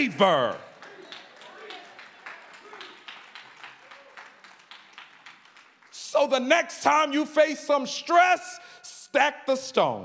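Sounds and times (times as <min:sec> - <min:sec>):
rhythmic clapping: 0:00.0 - 0:06.6.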